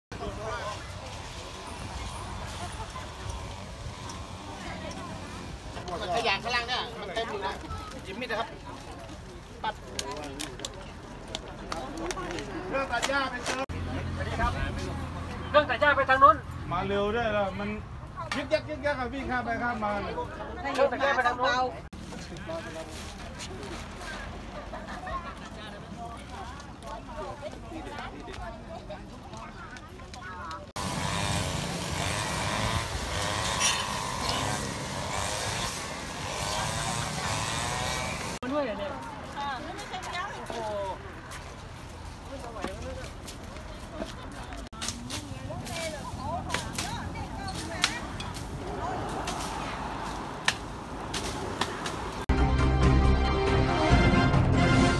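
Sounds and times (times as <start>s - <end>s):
distant people talking: 0.1s - 16.9s
brush stems snapping: 47.6s - 52.2s.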